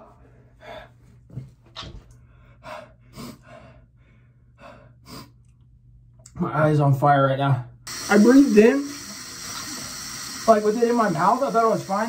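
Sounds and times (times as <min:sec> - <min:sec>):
man breathing hard and gasping: 0:02.2 - 0:05.4.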